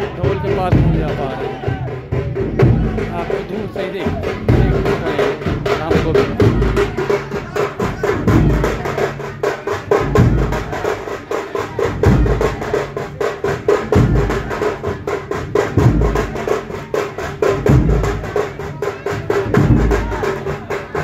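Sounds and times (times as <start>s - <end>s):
deep bass drum beat: 0.0s - 21.0s.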